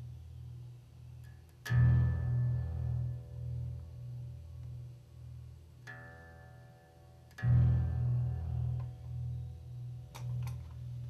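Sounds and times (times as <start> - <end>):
looped synthesizer guitar pulse: 0.0 - 11.0
plucked guitar note ringing: 5.8 - 11.0
sharp clicks: 10.1 - 10.7.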